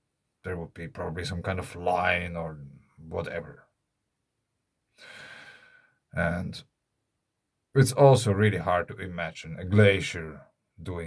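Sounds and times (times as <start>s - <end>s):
man sighing breath: 5.0s - 6.0s.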